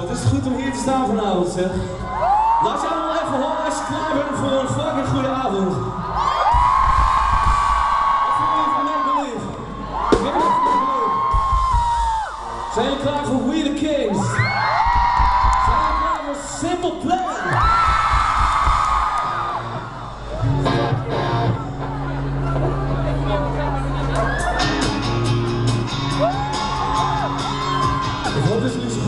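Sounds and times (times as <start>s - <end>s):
crowd yelling and singing along: 17.0s - 29.0s
live rock band: 17.8s - 29.0s.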